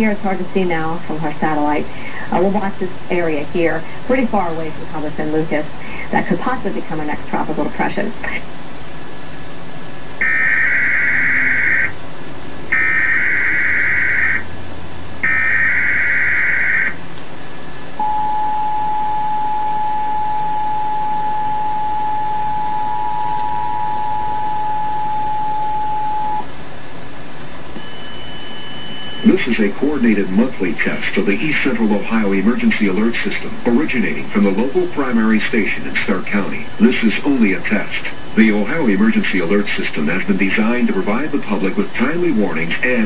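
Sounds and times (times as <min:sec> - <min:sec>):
warbling digital data tone: 0:10.2 - 0:12.0, 0:12.7 - 0:14.5, 0:15.2 - 0:17.0
two-tone attention signal: 0:18.0 - 0:26.5, 0:27.8 - 0:29.5.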